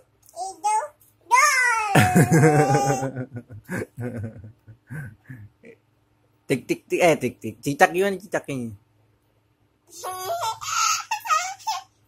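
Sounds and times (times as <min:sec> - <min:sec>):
toddler squealing and laughing: 0:01.4 - 0:03.1.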